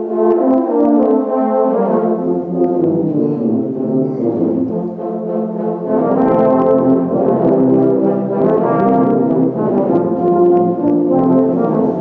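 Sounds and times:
tuba and euphonium ensemble: 0:00.0 - 0:12.0.

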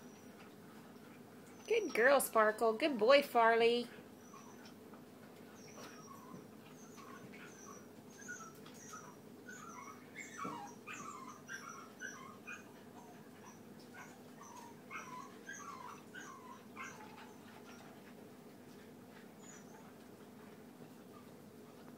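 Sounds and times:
puppies whimpering: 0:04.1 - 0:04.8, 0:05.5 - 0:18.0, 0:19.4 - 0:20.0.

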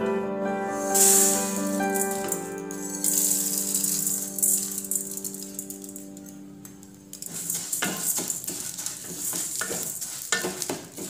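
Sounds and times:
background keyboard music: 0:00.0 - 0:08.8
lentils rattling in metal pan: 0:00.8 - 0:11.0.

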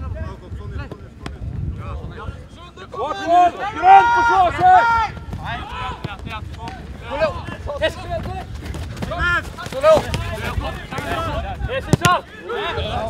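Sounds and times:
wind on microphone: 0:00.0 - 0:02.6
players shouting: 0:02.7 - 0:13.0
football kick thud: 0:08.2 - 0:11.2, 0:11.8 - 0:12.2.

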